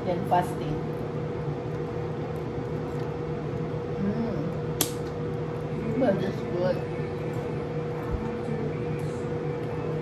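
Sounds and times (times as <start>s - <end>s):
fan humming: 0.0s - 10.0s.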